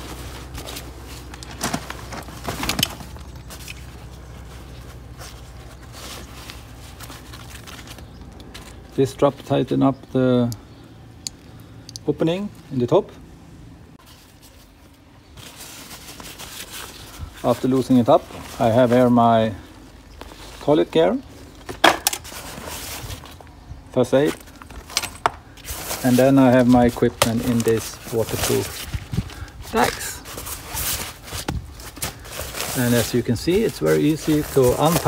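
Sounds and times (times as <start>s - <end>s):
nylon fabric rustling: 0.0s - 8.9s, 14.0s - 23.5s, 25.6s - 35.0s.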